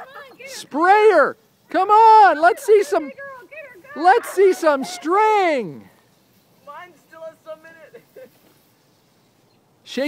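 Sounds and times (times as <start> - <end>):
distant children calling out: 0.0 - 9.9.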